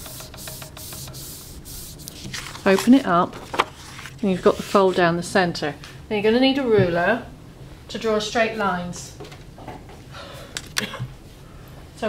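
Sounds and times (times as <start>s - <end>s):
hands rubbing paper: 0.0s - 3.0s.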